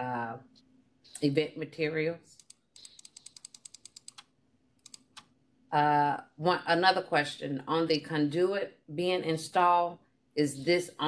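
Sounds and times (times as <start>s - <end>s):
computer mouse clicks: 2.4s - 5.3s.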